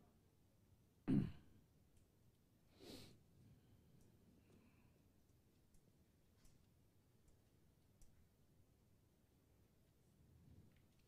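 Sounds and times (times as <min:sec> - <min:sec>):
soft breath: 0:02.7 - 0:03.6, 0:04.3 - 0:05.3.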